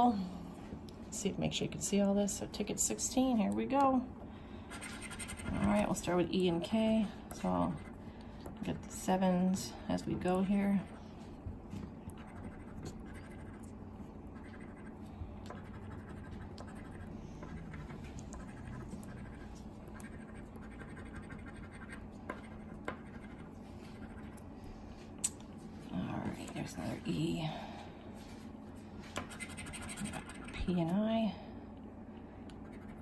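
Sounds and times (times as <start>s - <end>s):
coin scratching lottery ticket: 12.2s - 13.7s, 15.6s - 24.3s, 29.3s - 30.8s.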